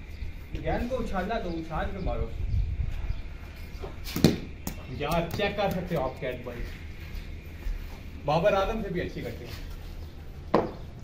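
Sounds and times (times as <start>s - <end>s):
ball bouncing on concrete: 3.8s - 6.1s, 10.5s - 10.8s
wooden bat hitting ball: 4.1s - 4.8s, 10.5s - 10.8s.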